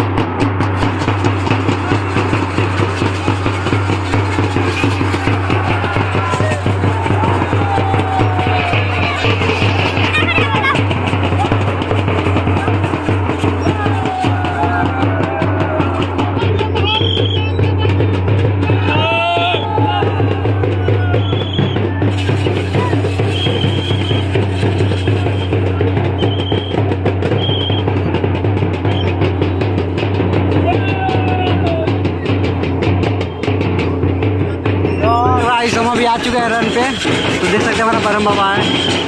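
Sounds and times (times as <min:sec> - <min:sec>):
loud festival drumming: 0:00.0 - 0:39.0
crowd shouting: 0:00.1 - 0:28.0, 0:28.6 - 0:33.6, 0:34.4 - 0:39.0
high whistle-like tones: 0:16.8 - 0:17.7, 0:21.1 - 0:21.9, 0:23.1 - 0:27.9, 0:38.6 - 0:39.0.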